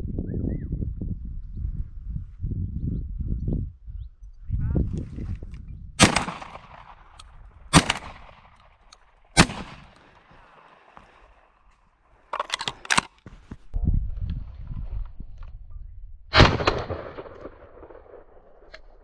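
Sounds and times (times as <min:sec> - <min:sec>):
shotgun shots: 0:06.0 - 0:08.6, 0:09.4 - 0:10.9, 0:16.3 - 0:18.3.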